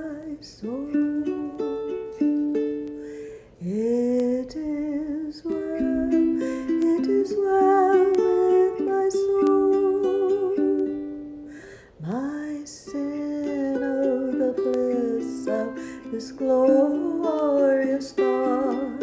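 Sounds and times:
woman singing: 0:00.0 - 0:03.0, 0:03.6 - 0:19.0
ukulele chords: 0:00.0 - 0:19.0.

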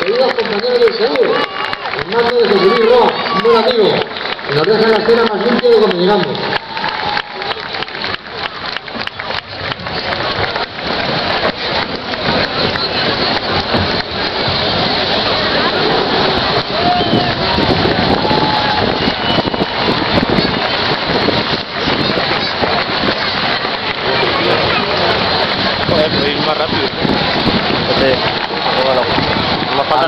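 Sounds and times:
crowd applauding: 0:00.0 - 0:30.0
voices: 0:00.0 - 0:30.0.

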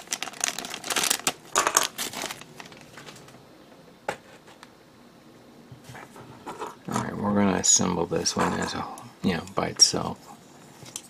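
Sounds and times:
plastic bag crinkling: 0:00.0 - 0:03.3.

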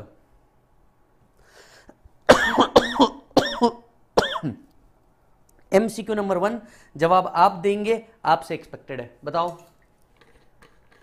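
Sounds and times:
man coughing: 0:02.3 - 0:04.6
man speaking: 0:05.7 - 0:09.7.

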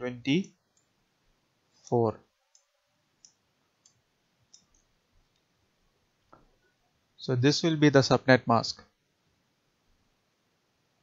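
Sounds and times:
computer mouse clicks: 0:00.7 - 0:00.9, 0:02.5 - 0:05.5.

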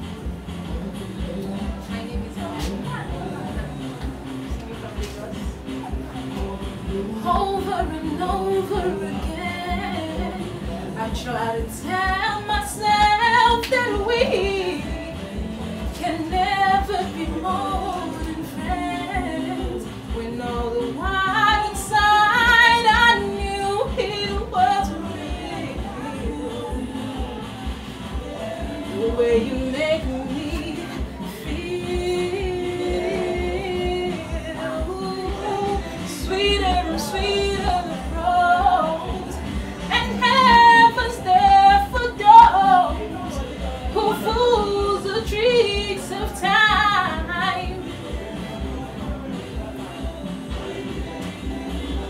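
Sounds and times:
woman singing: 0:01.2 - 0:04.1, 0:06.4 - 0:52.0.

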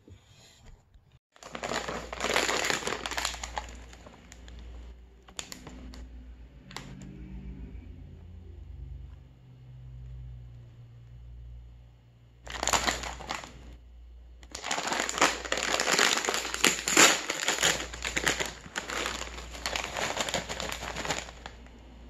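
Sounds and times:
bag tearing open: 0:01.4 - 0:04.4, 0:12.5 - 0:13.6, 0:14.5 - 0:21.7
chip bag crinkling: 0:01.4 - 0:04.7, 0:05.3 - 0:06.0, 0:12.5 - 0:13.7, 0:14.4 - 0:21.8.

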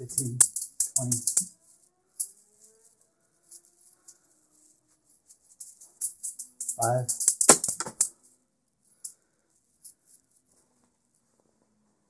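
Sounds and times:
juggling balls clicking and rustling: 0:00.0 - 0:01.5, 0:05.6 - 0:08.1.

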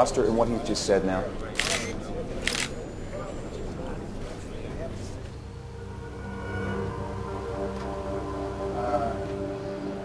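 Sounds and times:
murmur of voices: 0:00.0 - 0:06.2
camera shutter click: 0:01.6 - 0:02.8.

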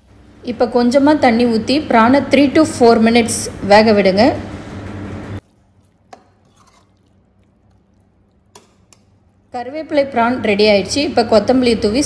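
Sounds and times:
spatula stirring thick curry: 0:05.4 - 0:09.2.

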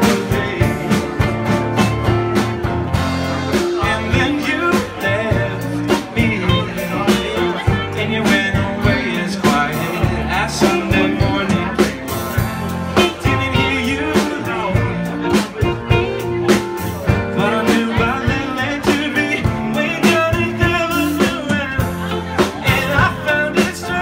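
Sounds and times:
man singing lead vocal: 0:00.0 - 0:02.2, 0:02.9 - 0:24.0
live band playing: 0:00.0 - 0:24.0.

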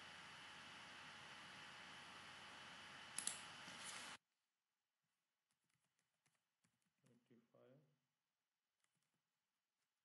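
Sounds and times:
faint keyboard typing: 0:05.5 - 0:07.4, 0:08.8 - 0:09.2.

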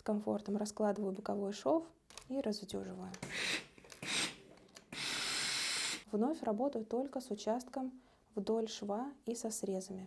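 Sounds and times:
steam iron hissing: 0:03.2 - 0:06.0.

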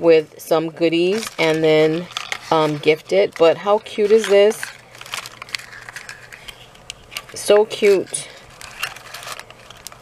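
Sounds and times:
soft paper rustles: 0:01.0 - 0:10.0.

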